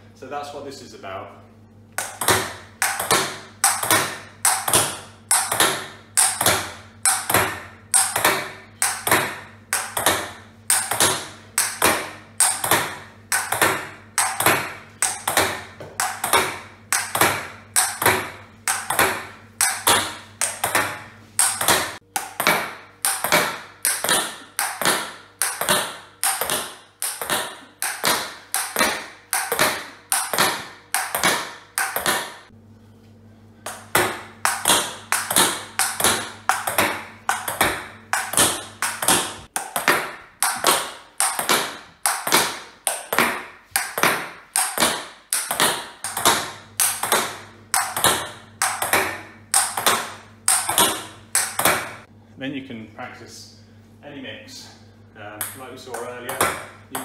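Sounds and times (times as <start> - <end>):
table tennis ball knocks: 2.0 - 32.5, 33.7 - 52.1, 55.4 - 57.0.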